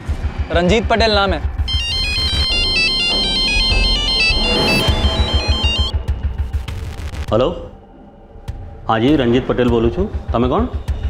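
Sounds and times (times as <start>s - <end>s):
background music with pulsing beat: 0.1s - 7.7s
phone ringtone melody: 1.7s - 6.0s.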